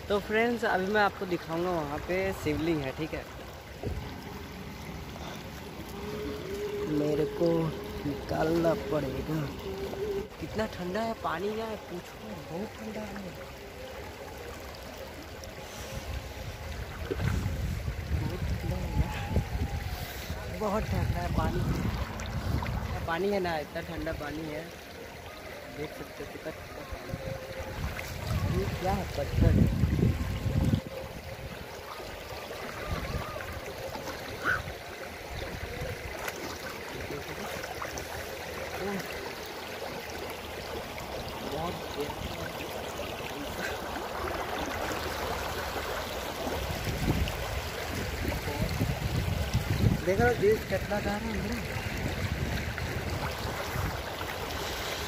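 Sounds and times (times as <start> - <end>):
stream flowing over rocks: 0.0 - 55.0
wind rumbling on microphone: 3.7 - 10.7, 15.7 - 24.2, 26.7 - 36.2, 40.6 - 55.0.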